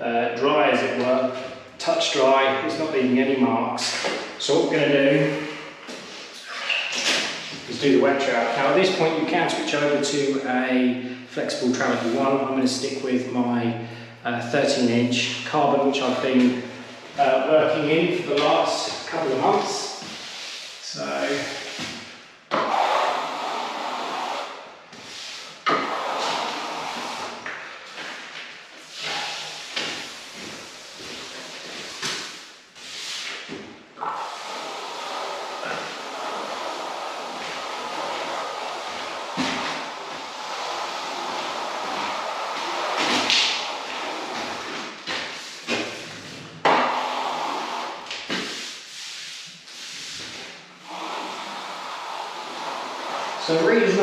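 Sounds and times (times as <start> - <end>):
trowel scraping wet plaster: 22.5 - 27.6.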